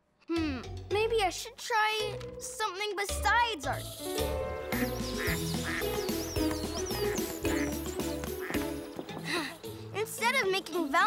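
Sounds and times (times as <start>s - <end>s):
background music with bass line: 3.1s - 9.4s
small birds chirping: 3.6s - 11.0s
ducks quacking: 4.6s - 8.8s.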